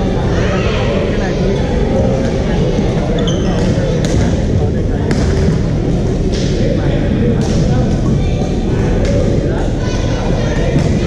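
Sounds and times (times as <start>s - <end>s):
din of voices in sports hall: 0.0s - 11.0s
court shoes squeaking: 3.0s - 4.5s.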